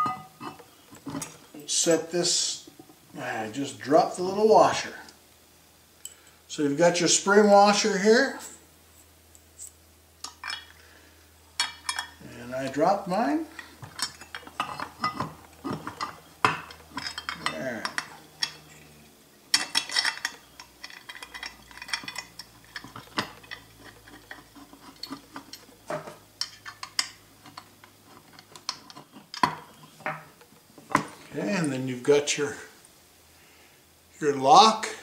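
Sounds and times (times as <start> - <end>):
small metal parts clinking: 0.0 - 1.5, 10.2 - 10.8, 11.6 - 31.7.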